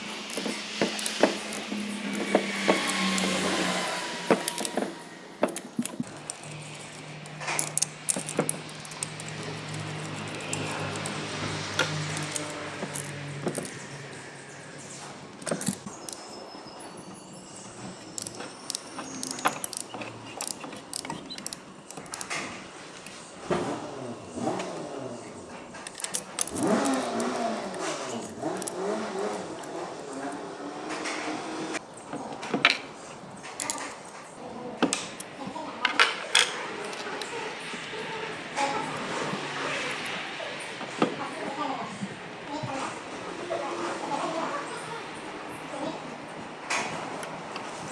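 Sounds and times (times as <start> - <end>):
socket wrench clicks: 0.3 - 3.3, 18.2 - 22.4.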